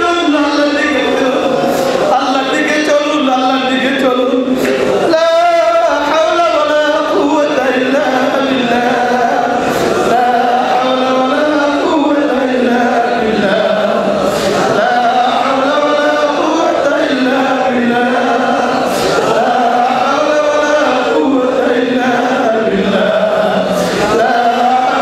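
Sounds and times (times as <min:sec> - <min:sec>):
man chanting into microphones: 0:00.0 - 0:25.0.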